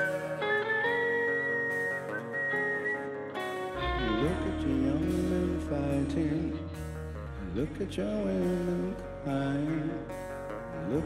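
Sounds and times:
whistled melody: 0.0 - 4.6
bass and drums: 0.0 - 11.0
sustained electric guitar notes: 0.0 - 11.0.

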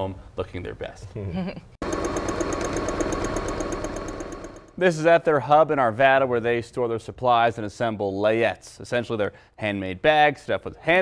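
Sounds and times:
electric sewing machine stitching: 1.8 - 4.8.

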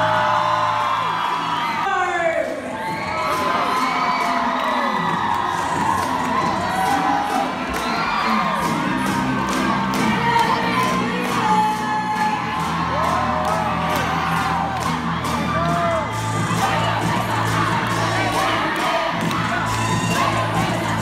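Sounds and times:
crowd cheering and shouting: 0.0 - 21.0
music: 0.0 - 21.0.

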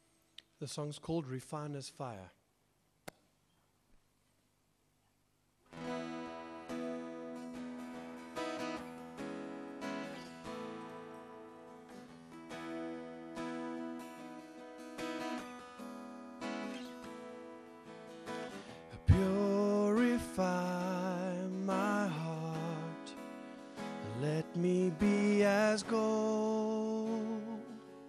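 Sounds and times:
acoustic guitar chords: 5.6 - 28.0.

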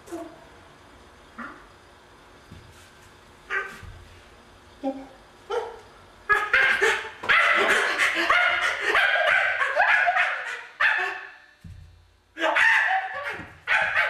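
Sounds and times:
man making bark-like cries: 12.4 - 14.0.

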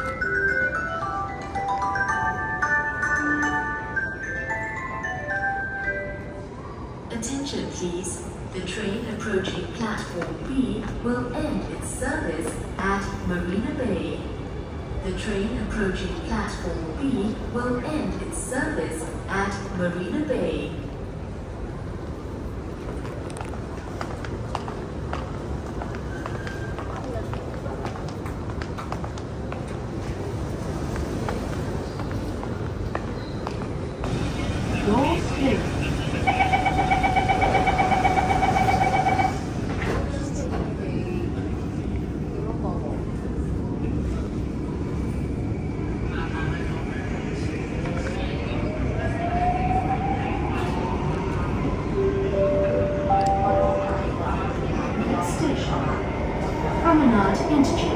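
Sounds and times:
train rumble: 0.0 - 57.9
pulsing door warning tone: 36.2 - 39.5.

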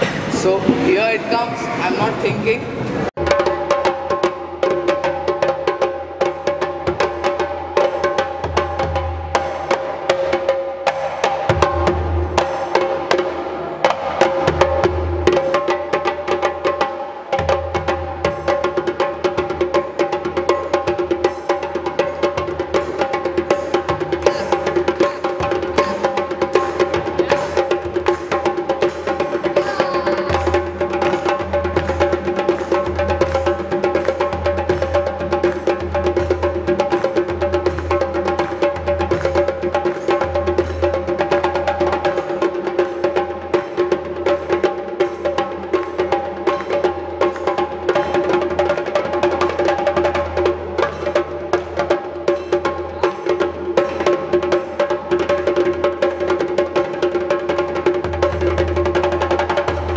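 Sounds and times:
hand drums playing rhythm: 3.2 - 59.9.

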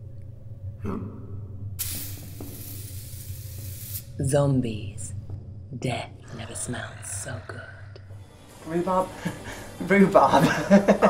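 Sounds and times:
low hum: 0.0 - 11.0
steady hiss: 1.8 - 4.4.

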